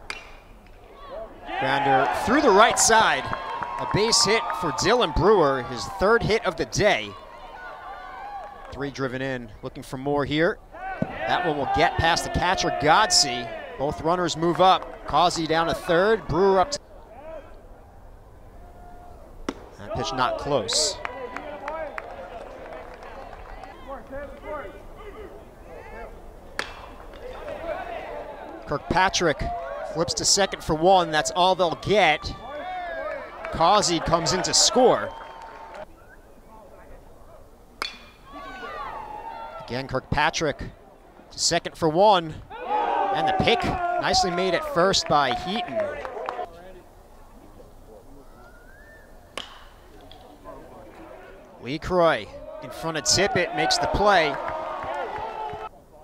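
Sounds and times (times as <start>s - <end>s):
bat hitting ball: 0.0s - 0.8s, 19.4s - 19.8s, 26.5s - 27.6s, 37.8s - 38.3s, 49.3s - 50.3s
crowd murmur: 21.0s - 28.7s.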